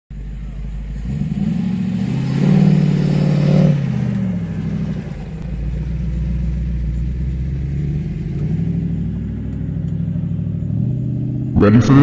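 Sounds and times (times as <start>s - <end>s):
car engine driving past: 0.1s - 12.0s.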